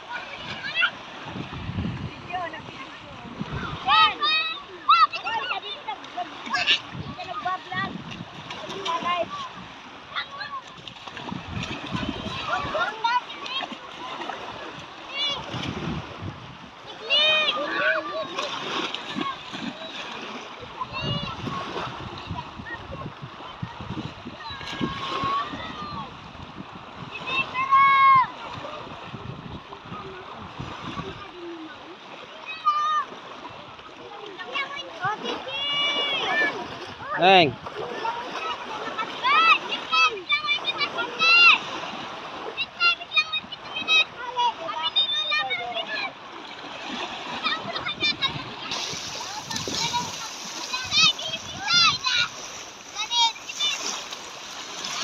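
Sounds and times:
children squealing and calling: 0.0s - 1.3s, 3.4s - 7.9s, 8.5s - 15.6s, 16.8s - 26.2s, 27.2s - 28.9s, 30.0s - 41.8s, 42.4s - 55.0s
seawater splashing: 0.0s - 55.0s.

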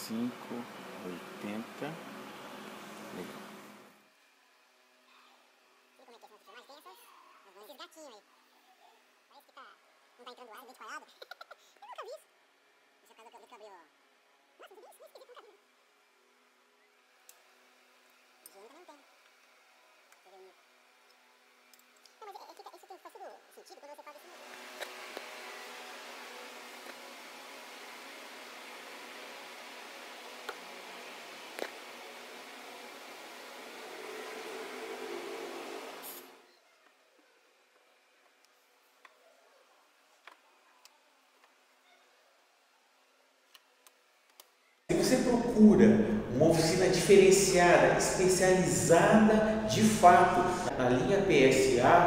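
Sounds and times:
background hiss: 0.0s - 4.1s, 44.3s - 52.0s
faint humming tones: 0.0s - 41.8s, 42.5s - 52.0s.

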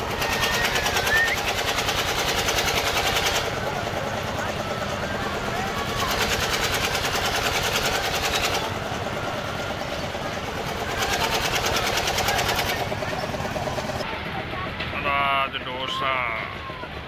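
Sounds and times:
fairground crowd chatter: 0.0s - 17.0s
ride machinery rattling: 0.0s - 17.0s.

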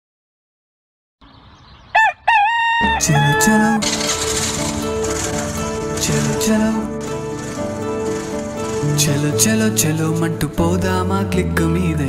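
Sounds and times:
rooster crowing: 1.9s - 3.9s
music: 2.8s - 12.0s.

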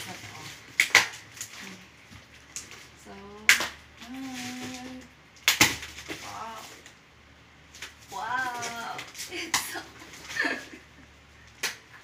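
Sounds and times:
sharp snap of cardboard parcel: 0.8s - 1.2s, 5.4s - 6.3s.

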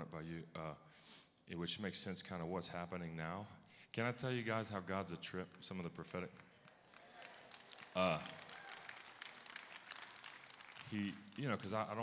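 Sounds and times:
man speaking into a microphone: 0.0s - 6.4s, 8.0s - 8.4s, 10.8s - 12.0s.

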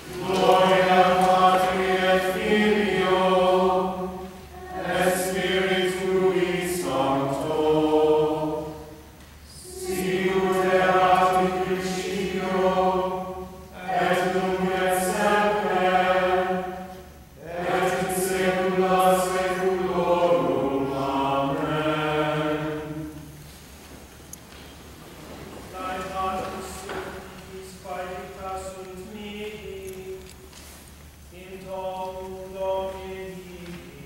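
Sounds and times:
choir singing plainchant: 0.0s - 23.4s, 25.7s - 30.2s, 31.3s - 34.0s.

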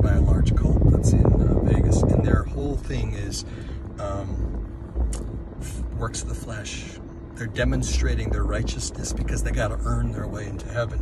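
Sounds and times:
low rumble in car cabin: 0.0s - 11.0s.

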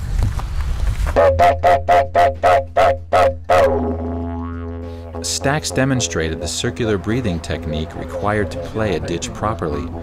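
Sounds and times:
didgeridoo drone: 1.1s - 10.0s.

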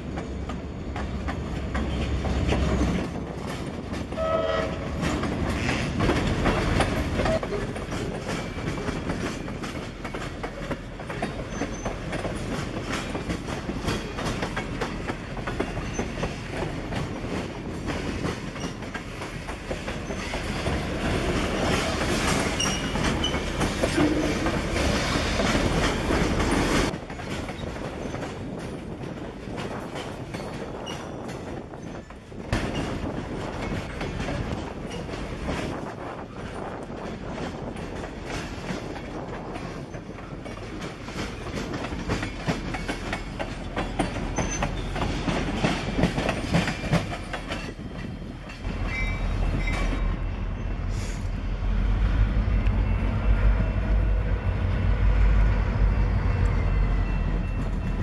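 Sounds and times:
train wheels clanking over rail joints: 0.0s - 50.1s
diesel locomotive rumble: 40.3s - 58.0s.

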